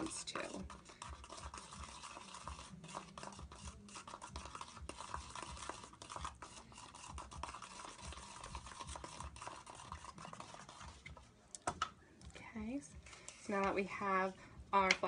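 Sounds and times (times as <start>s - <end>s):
brush scraping in plastic bowl: 0.0s - 11.2s.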